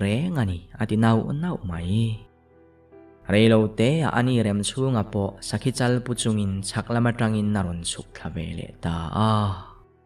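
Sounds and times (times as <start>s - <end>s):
man narrating: 0.0s - 2.4s, 3.1s - 9.9s
faint background music: 0.0s - 10.0s.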